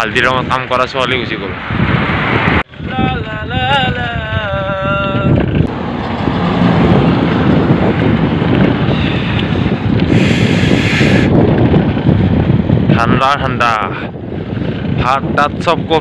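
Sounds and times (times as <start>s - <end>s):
highway traffic rumble: 0.0s - 16.0s
wind buffeting microphone: 0.0s - 16.0s
brief hiss: 10.1s - 11.3s.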